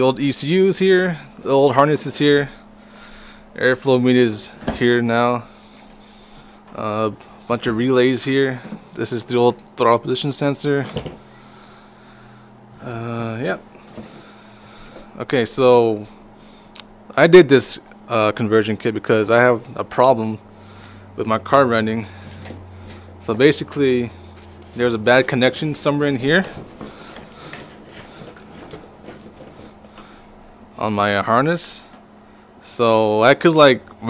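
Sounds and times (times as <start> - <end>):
faint low hum: 0.0 - 34.0
wires and connectors rustling: 12.7 - 15.6, 21.7 - 30.8.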